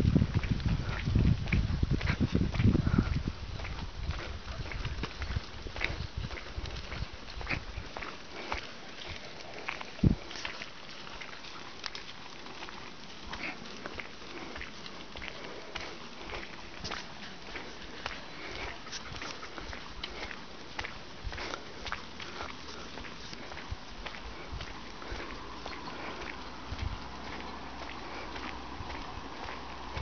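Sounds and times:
footsteps on dirt track: 0:00.0 - 0:30.0.

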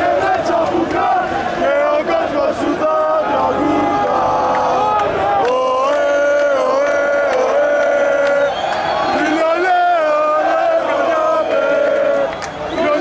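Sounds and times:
crowd singing a chant: 0:00.0 - 0:13.0.

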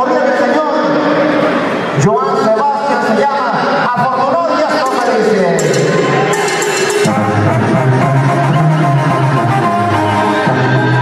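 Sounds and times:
man's voice over public address: 0:00.0 - 0:06.1
live band music: 0:04.9 - 0:11.0.

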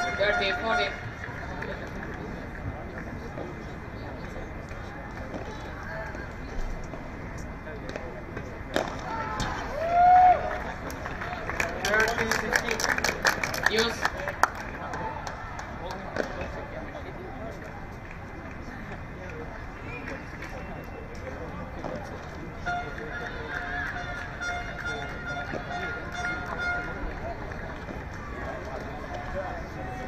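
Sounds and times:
ball struck by rackets: 0:07.8 - 0:09.6.

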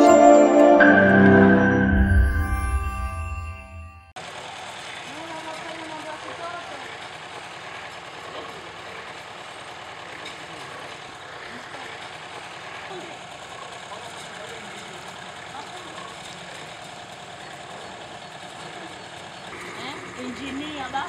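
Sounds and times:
engine running: 0:00.0 - 0:21.0
people talking: 0:05.1 - 0:07.0, 0:13.9 - 0:16.8, 0:17.4 - 0:21.0.

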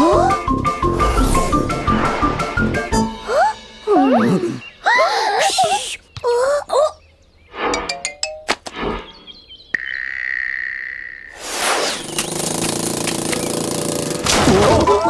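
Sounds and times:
loud rushing noise: 0:00.8 - 0:03.2.

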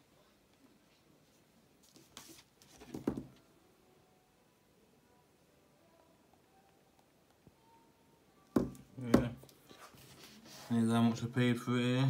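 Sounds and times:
knock on hard tabletop: 0:02.9 - 0:03.3, 0:08.6 - 0:09.4.

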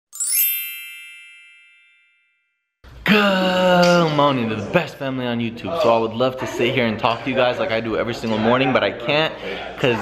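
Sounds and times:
shimmer of bright tones: 0:00.1 - 0:02.2
ringing chime: 0:00.1 - 0:02.8.

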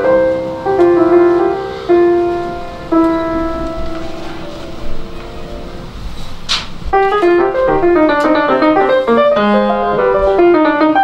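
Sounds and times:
piano playing: 0:00.0 - 0:11.0.

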